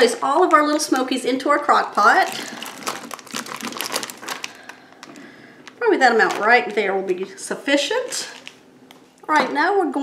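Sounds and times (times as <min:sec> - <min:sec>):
plastic package crinkling: 0:00.0 - 0:01.2, 0:01.8 - 0:09.1.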